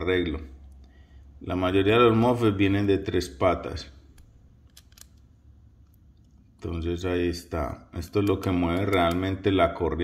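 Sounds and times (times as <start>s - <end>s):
screwdriver tip clicking on metal: 4.2s - 5.2s.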